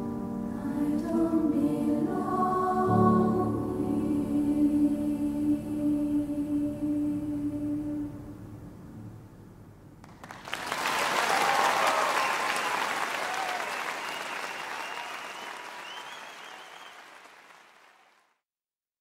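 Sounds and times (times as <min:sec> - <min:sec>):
choir singing: 0:00.3 - 0:08.4
audience applauding: 0:10.0 - 0:18.4
audience cheering: 0:10.2 - 0:18.2.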